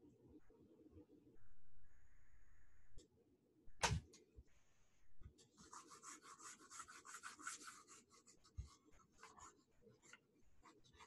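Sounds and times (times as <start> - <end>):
stylus scratching on tablet: 5.4 - 11.0.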